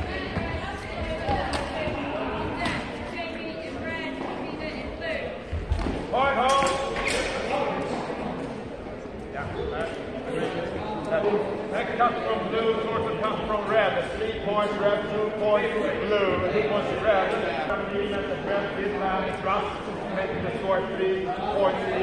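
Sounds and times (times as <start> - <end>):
background chatter: 0.0 - 22.0.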